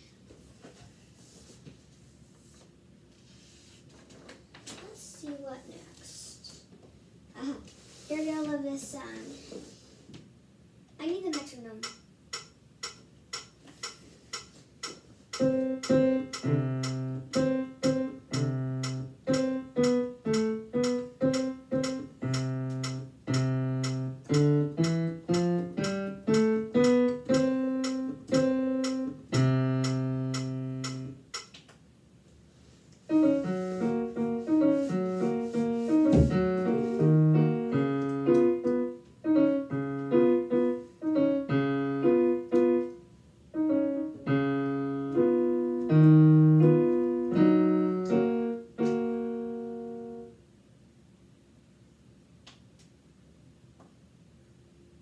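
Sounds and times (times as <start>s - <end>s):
digital piano playing: 15.3s - 31.4s, 33.1s - 50.4s.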